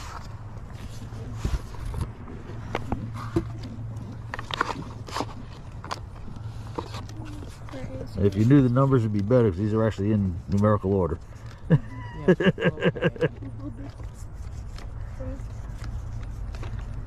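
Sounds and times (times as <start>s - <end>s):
cards flipped in cardboard box: 0.0s - 9.4s, 13.7s - 17.0s.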